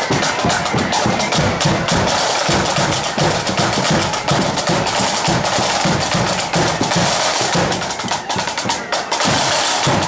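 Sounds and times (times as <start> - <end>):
snare drums: 0.0 - 10.0.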